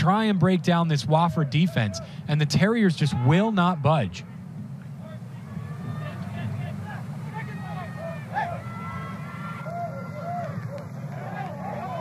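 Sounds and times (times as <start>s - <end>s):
low crowd rumble: 0.0s - 12.0s
players shouting: 1.0s - 12.0s.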